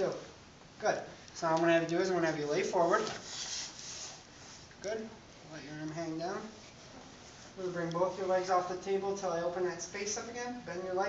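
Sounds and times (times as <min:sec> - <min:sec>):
body rubbing on vinyl table: 0:02.2 - 0:04.8, 0:06.3 - 0:09.0.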